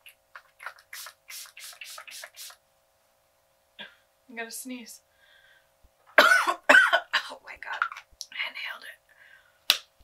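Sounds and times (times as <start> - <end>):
spray bottle hissing spritzes: 0.9 - 2.6.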